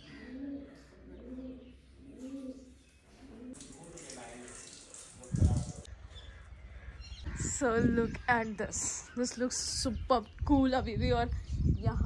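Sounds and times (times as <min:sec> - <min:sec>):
pigeon cooing: 0:00.0 - 0:05.1.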